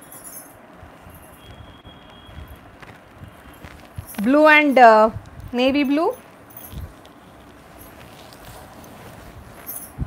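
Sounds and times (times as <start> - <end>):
fabric rustling: 0.0 - 10.0
low room noise: 0.0 - 10.0.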